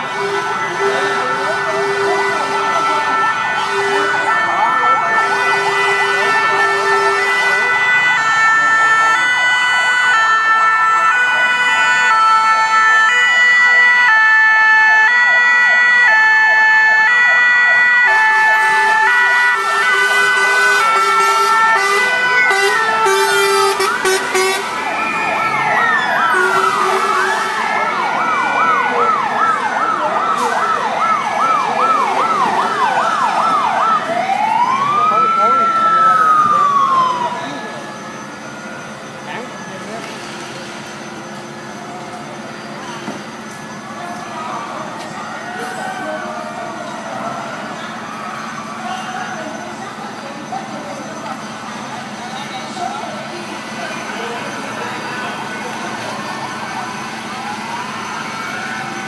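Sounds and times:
rising and falling siren wails: 0:00.0 - 0:42.6, 0:43.2 - 0:59.0
two-tone hi-lo siren: 0:00.0 - 0:42.8, 0:43.5 - 0:59.0
fast warbling siren yelp: 0:02.7 - 0:05.5, 0:07.4 - 0:40.0.

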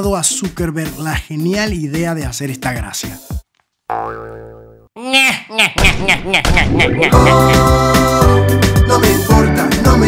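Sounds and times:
springy boing glides: 0:03.9 - 0:04.9.

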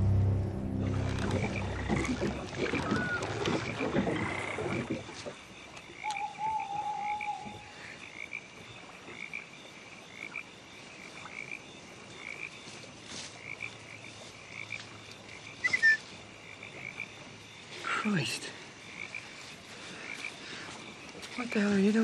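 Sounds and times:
frogs calling: 0:01.2 - 0:22.0.

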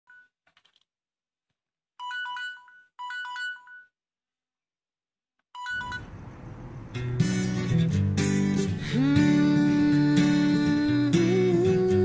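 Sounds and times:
phone alarm beeping melody: 0:05.6 - 0:06.2
acoustic guitar music: 0:05.8 - 0:12.0.

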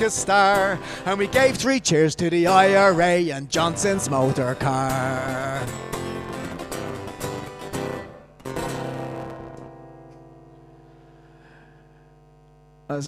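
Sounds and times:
acoustic guitar strumming: 0:00.0 - 0:12.1.

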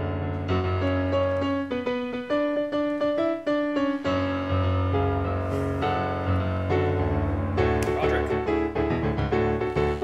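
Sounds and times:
piano melody: 0:00.0 - 0:10.0.

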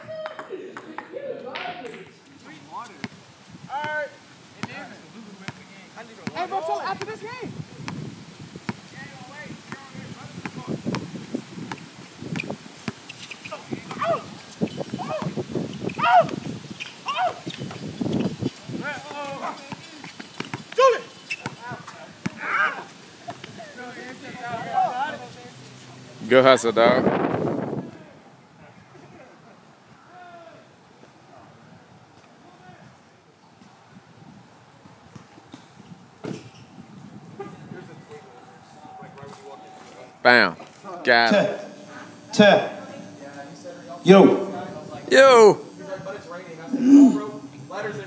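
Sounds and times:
indistinct voices calling out: 0:38.2 - 0:48.0.

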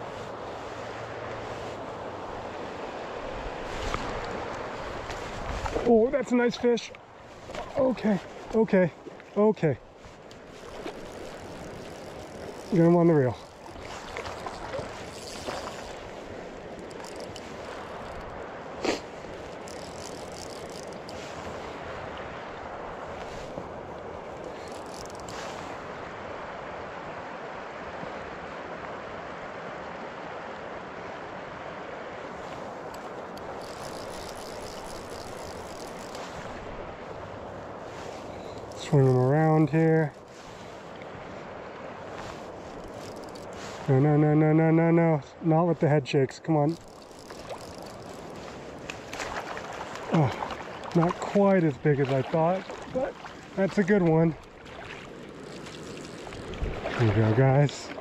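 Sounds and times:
river water rushing: 0:00.0 - 0:58.0
man speaking: 0:05.8 - 0:07.0, 0:07.7 - 0:09.8, 0:12.7 - 0:13.4, 0:38.8 - 0:40.1, 0:43.9 - 0:46.8, 0:51.0 - 0:54.4, 0:57.0 - 0:58.0.

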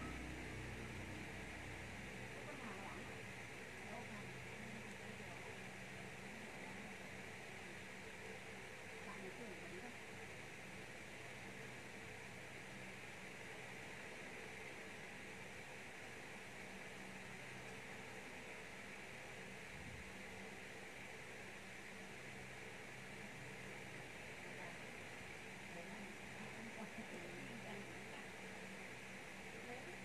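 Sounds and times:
low hum: 0:00.0 - 0:02.9
faint steady hiss: 0:00.0 - 0:30.0.

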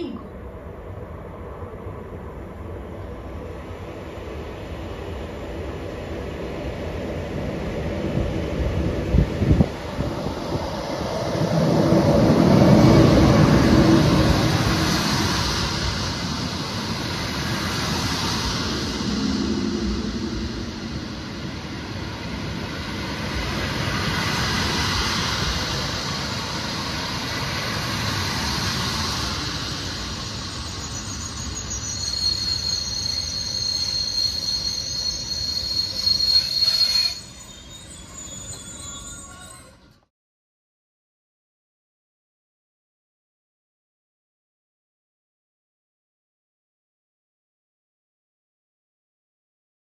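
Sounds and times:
locomotive rumbling past: 0:00.0 - 0:40.0
train coaches rolling: 0:02.7 - 0:40.1
high wheel squeal: 0:30.0 - 0:40.1.

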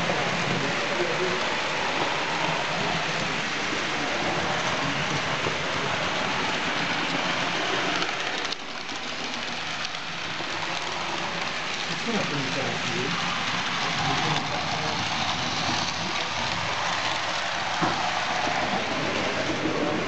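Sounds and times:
faint voices: 0:00.0 - 0:20.0
model train rolling on track: 0:00.0 - 0:20.0.

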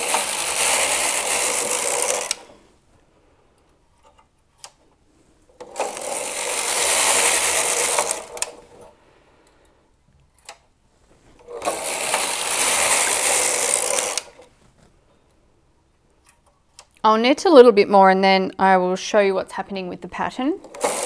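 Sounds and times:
knitting machine carriage clatter: 0:00.0 - 0:02.5, 0:05.6 - 0:08.9, 0:11.4 - 0:14.5, 0:20.6 - 0:21.0.

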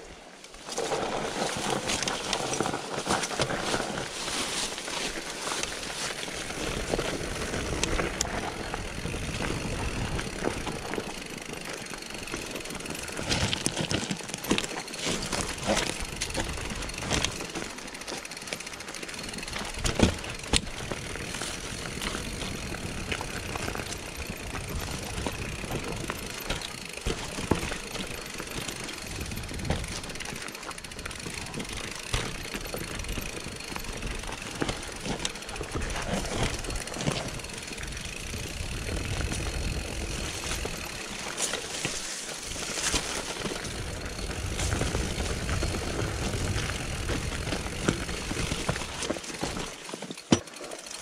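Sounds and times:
mountain bike rattling over trail: 0:00.0 - 0:51.0
wheels knocking on roots and rocks: 0:00.0 - 0:51.0.

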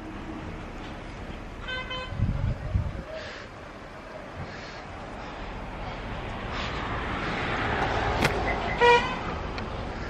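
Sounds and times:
vehicle passing: 0:04.5 - 0:10.0.

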